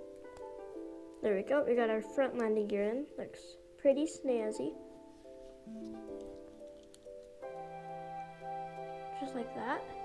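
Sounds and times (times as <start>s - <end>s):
quiet music of held chords: 0.0s - 10.0s.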